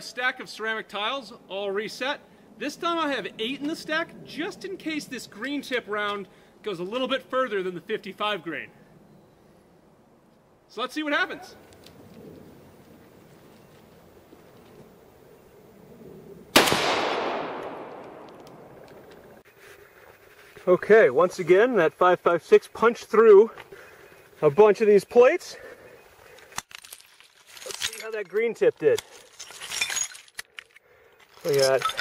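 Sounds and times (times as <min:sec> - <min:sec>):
rifle shot echoing: 0:16.5 - 0:19.1
ceramic shards clinking: 0:29.3 - 0:30.4, 0:31.4 - 0:32.0.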